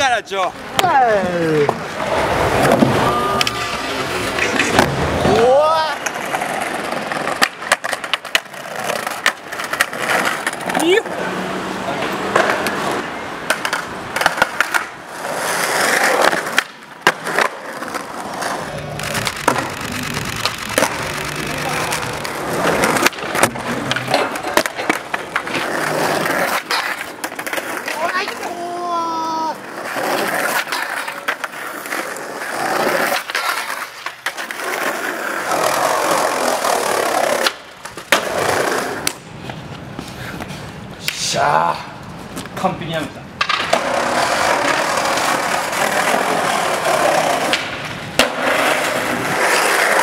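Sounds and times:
skateboard wheels rolling: 0.0 - 50.0
skateboard grinding along ledge: 0.6 - 41.0, 43.4 - 50.0
skateboard tail clacks: 1.6 - 11.0, 12.0 - 28.8, 29.7 - 41.2, 43.4 - 50.0.

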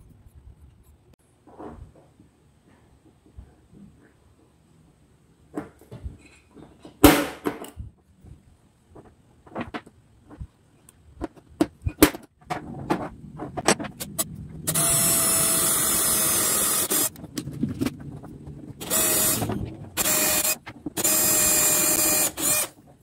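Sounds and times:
clicks and knocks of handling wood: 5.5 - 14.2
cordless drill boring into wood: 14.7 - 17.1, 18.8 - 22.8.

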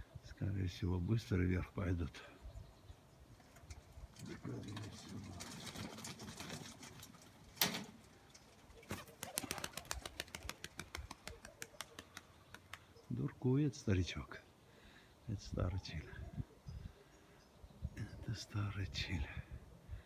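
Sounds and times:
pigeons cooing: 8.2 - 13.1
pigeon wing claps: 8.8 - 13.0.

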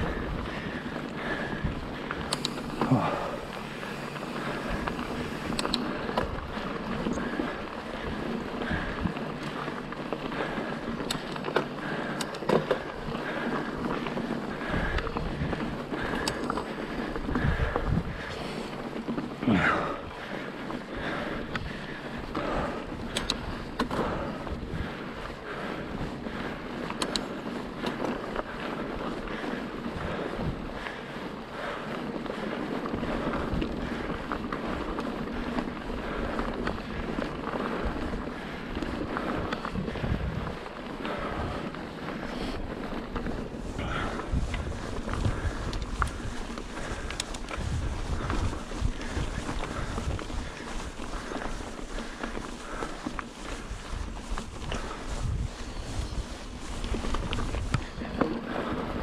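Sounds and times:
wind on microphone: 0.0 - 9.2, 14.6 - 18.6, 35.6 - 59.0
bike rattling and clicking: 0.0 - 59.0.

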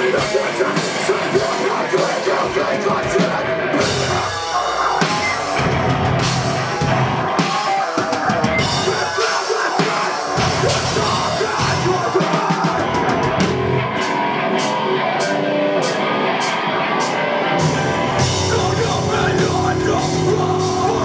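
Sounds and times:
distorted electric guitars: 0.0 - 21.0
drum kit: 0.0 - 21.0.

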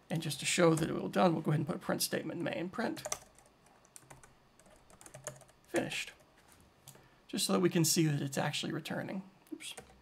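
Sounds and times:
typing on a computer keyboard: 3.0 - 5.9.

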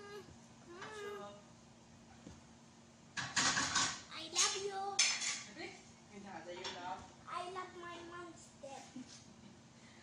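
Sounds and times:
dishes and cutlery clattering: 3.2 - 5.5.

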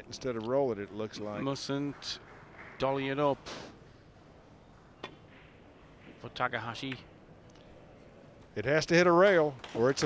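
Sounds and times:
faint hall background: 0.0 - 10.0.

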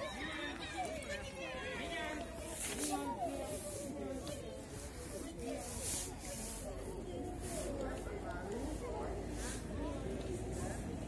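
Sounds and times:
faint distant talking: 0.0 - 11.0.

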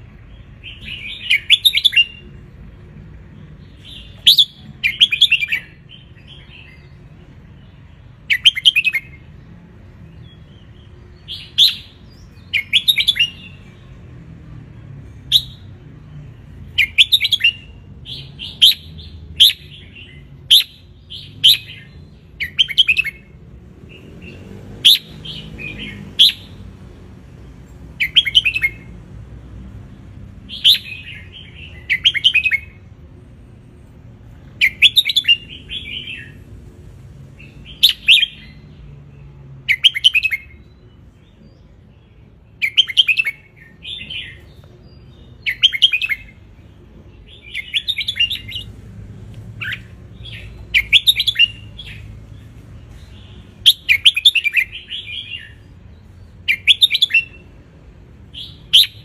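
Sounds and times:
bird singing chirpy phrases: 0.0 - 14.0, 15.0 - 26.8, 27.7 - 29.0, 30.4 - 33.0, 37.2 - 59.0.

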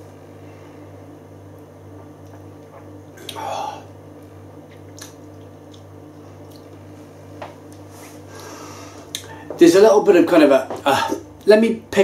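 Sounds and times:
low hum: 0.0 - 12.0
wet mouth sounds: 2.2 - 3.9, 4.7 - 6.8
lip and tongue clicks: 4.7 - 6.7.

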